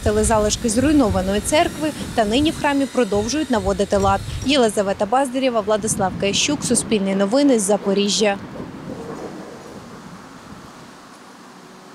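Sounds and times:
outdoor background noise: 0:00.0 - 0:11.9.

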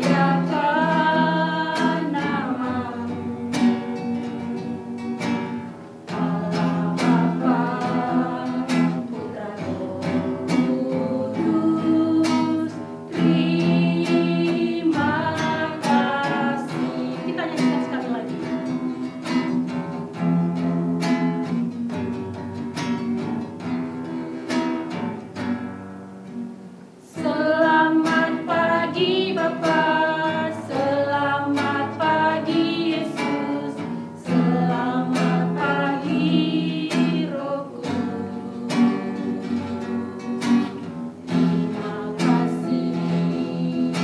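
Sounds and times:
group singing worship song: 0:00.0 - 0:19.8, 0:27.0 - 0:44.0
acoustic guitar strumming: 0:00.0 - 0:44.0.

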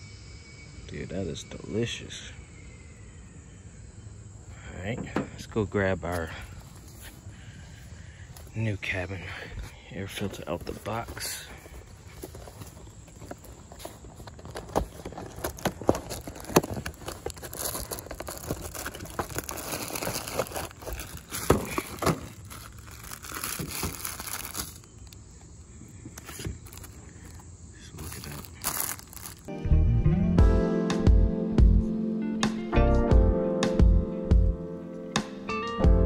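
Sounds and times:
cardboard and plastic crinkling: 0:10.1 - 0:25.2, 0:25.9 - 0:29.5.

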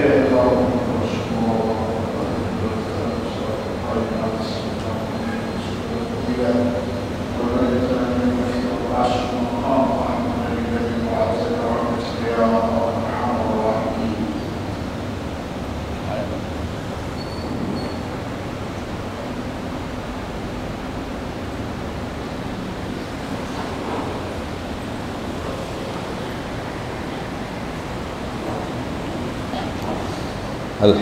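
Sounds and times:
room noise hiss in large hall: 0:00.0 - 0:31.0.

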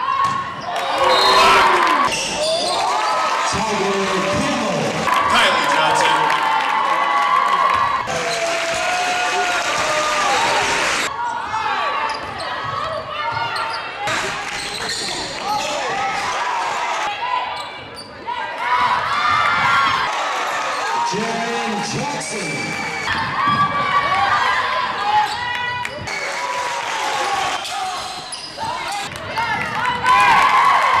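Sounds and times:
spectators' voices: 0:00.7 - 0:31.0.

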